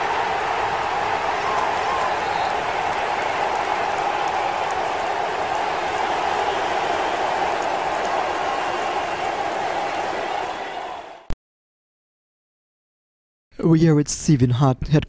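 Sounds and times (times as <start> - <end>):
stadium crowd cheering: 0.0 - 11.4.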